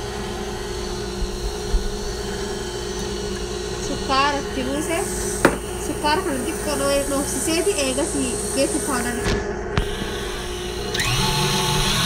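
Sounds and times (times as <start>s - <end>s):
stand mixer motor humming: 0.0s - 12.0s.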